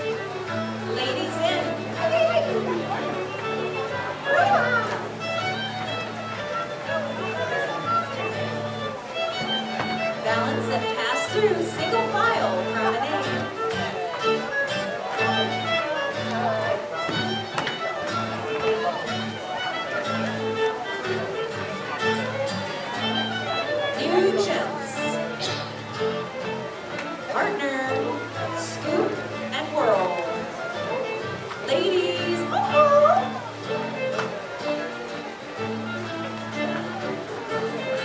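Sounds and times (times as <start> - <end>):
fiddle melody: 0.0 - 38.0
guitar accompaniment: 0.0 - 38.0.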